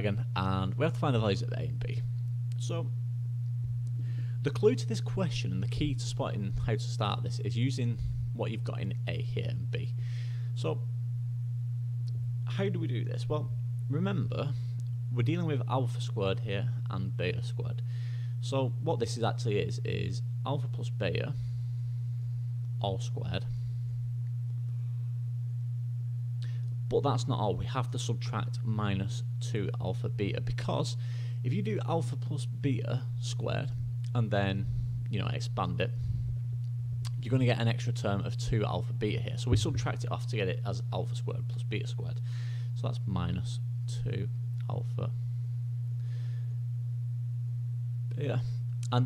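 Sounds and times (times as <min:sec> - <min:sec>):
low electrical hum: 0:00.0 - 0:49.0.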